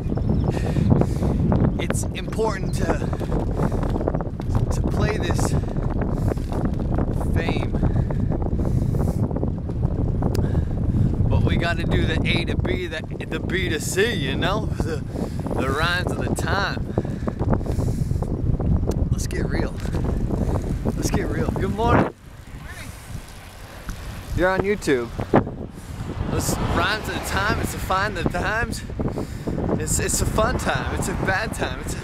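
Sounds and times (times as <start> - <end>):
wind buffeting microphone: 0.0 - 32.0
bicycle rolling: 0.1 - 18.8, 19.6 - 32.0.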